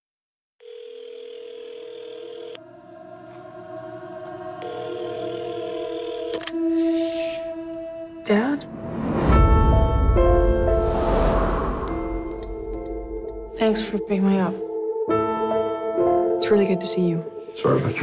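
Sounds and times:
telephone ringing tone: 0.6s - 2.7s, 4.6s - 6.6s
low film score drone: 2.5s - 16.4s.

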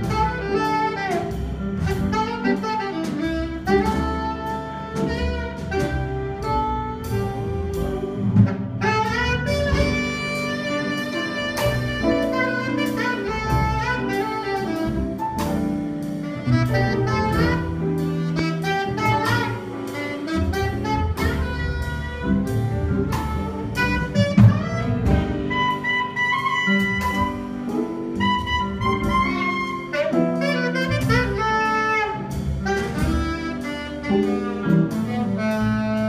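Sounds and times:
saxophone melody: 0.0s - 36.0s
small jazz ensemble playing: 0.0s - 36.0s.

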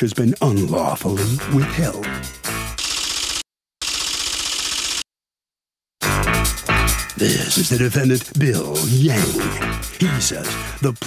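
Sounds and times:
rapid typing clicks: 2.8s - 5.0s.

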